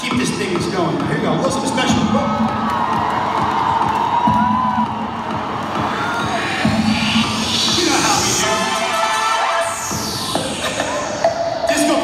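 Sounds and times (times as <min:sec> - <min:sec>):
arena crowd cheering and screaming: 0:00.0 - 0:12.0
music over loudspeakers: 0:00.0 - 0:12.0.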